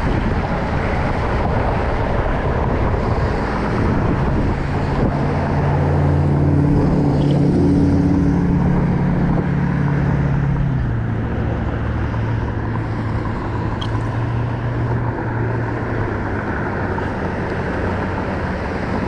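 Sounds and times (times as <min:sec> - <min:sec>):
low engine hum: 0:00.0 - 0:19.0
road traffic noise: 0:00.0 - 0:19.0.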